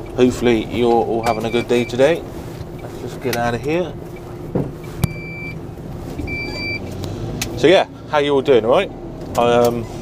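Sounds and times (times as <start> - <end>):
electronic beeps: 5.0 - 5.6, 6.3 - 6.8.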